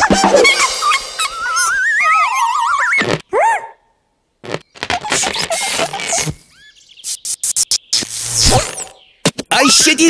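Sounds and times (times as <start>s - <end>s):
squeaky balloon chirps: 0.0s - 3.2s, 4.4s - 9.0s
static electricity crackles: 4.4s - 9.0s.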